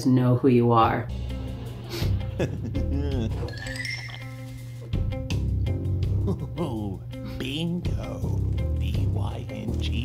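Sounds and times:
cartoon background music: 0:01.1 - 0:10.0
glittering chime effect: 0:03.4 - 0:04.8.

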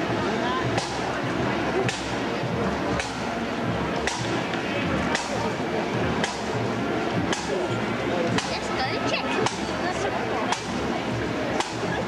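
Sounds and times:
marching drums cracking: 0:00.0 - 0:12.0
street crowd noise: 0:00.0 - 0:12.0.

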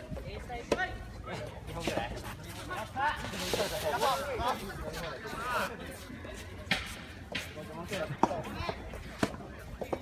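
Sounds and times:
people calling and shouting: 0:00.0 - 0:10.0.

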